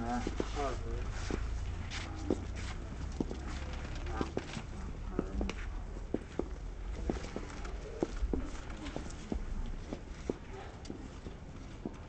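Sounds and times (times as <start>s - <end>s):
footsteps on brick paving: 0.0s - 12.0s.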